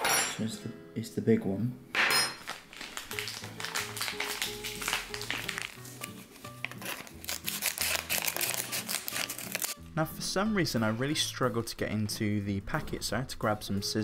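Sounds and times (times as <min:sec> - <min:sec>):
background music: 0:00.0 - 0:14.0
plastic packet crinkling: 0:02.4 - 0:09.8
scissors cutting plastic: 0:02.8 - 0:09.8.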